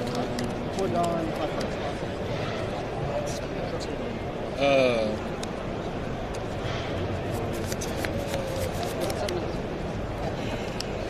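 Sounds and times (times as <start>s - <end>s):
cards clicking and snapping: 7.4s - 9.4s.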